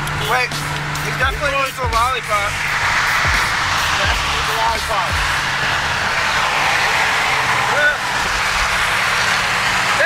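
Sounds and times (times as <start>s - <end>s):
road noise: 0.0s - 10.0s
wind rushing through car window: 2.6s - 10.0s.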